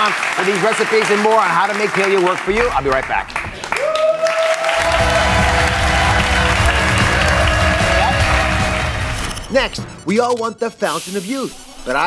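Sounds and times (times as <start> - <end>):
audience applauding: 0.0 - 9.2
loud music with bass beat: 4.9 - 9.3.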